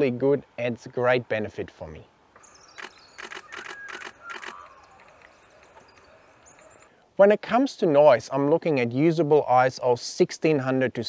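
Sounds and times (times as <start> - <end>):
camera shutter clicks: 2.7 - 6.9.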